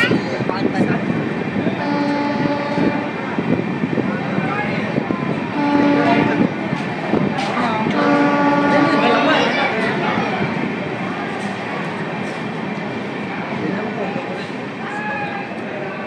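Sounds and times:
train rumbling at speed: 0.0s - 16.0s
train horn blasts: 1.8s - 3.2s, 5.5s - 6.5s, 7.6s - 9.5s.

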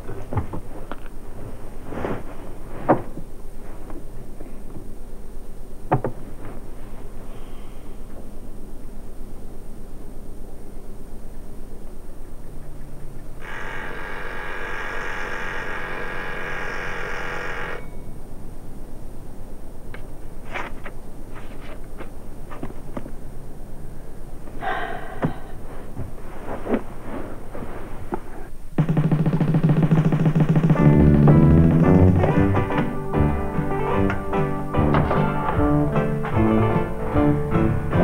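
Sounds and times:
oven timer buzzer ringing: 13.4s - 18.2s
sudden loud low sound: 28.8s - 33.6s
music with low bass notes: 28.8s - 38.0s.

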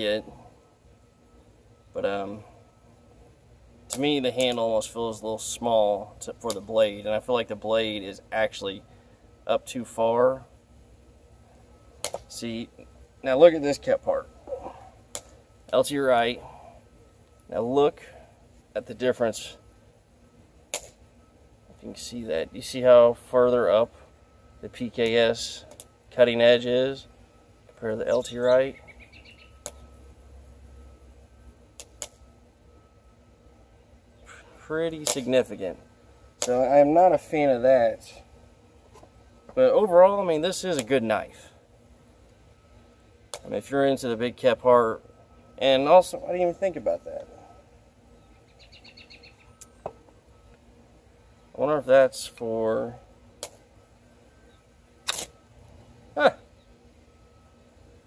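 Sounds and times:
short sharp clicks: 35.0s - 35.3s, 55.0s - 55.4s.

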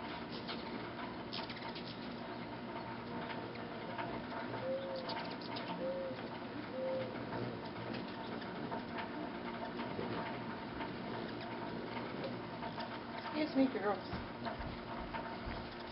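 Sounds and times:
hummingbirds flying: 0.0s - 15.9s
low cooing call: 4.6s - 7.2s.

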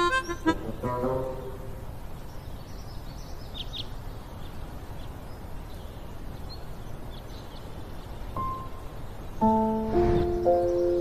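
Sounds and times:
small bird chirping: 0.0s - 1.3s, 2.2s - 11.0s.

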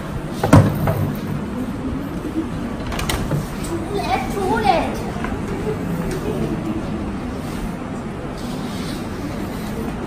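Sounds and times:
hall room noise: 0.0s - 10.0s.

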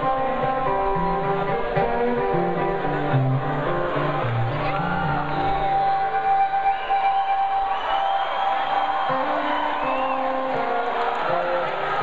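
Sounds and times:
low electric guitar notes: 0.0s - 6.7s.

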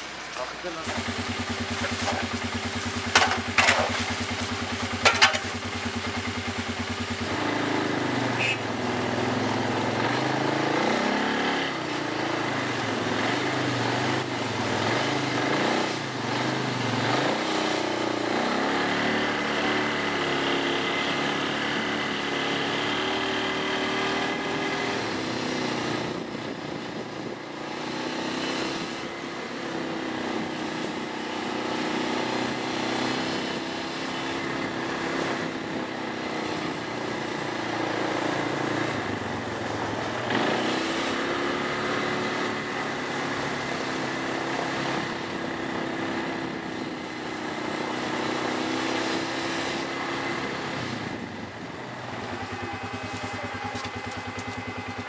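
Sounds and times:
vehicle engine running: 0.0s - 55.0s.

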